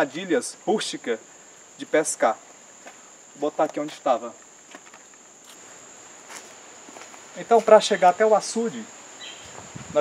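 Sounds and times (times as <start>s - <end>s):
high-pitched insect chirring: 0.0s - 10.0s.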